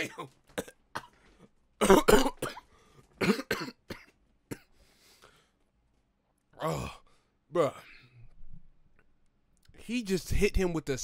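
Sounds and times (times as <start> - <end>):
man coughing: 0.0 - 1.2, 1.8 - 4.7.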